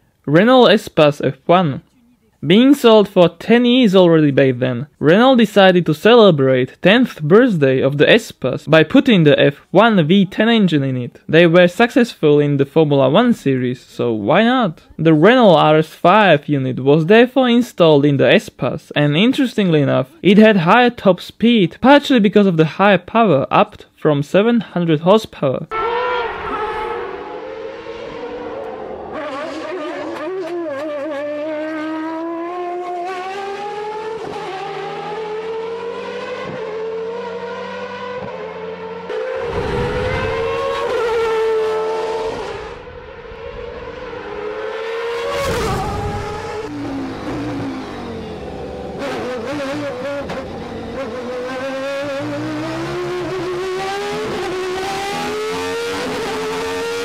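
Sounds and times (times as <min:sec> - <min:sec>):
car rushing past: 0:25.7 - 0:57.0
racing engine accelerating: 0:25.7 - 0:57.0.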